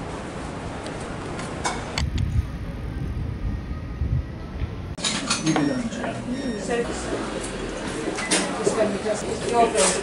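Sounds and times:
city street noise: 0.0s - 10.0s.

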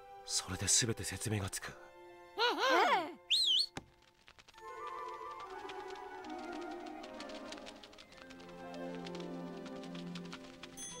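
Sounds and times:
soft music with sustained notes: 0.0s - 3.3s, 4.5s - 11.0s.

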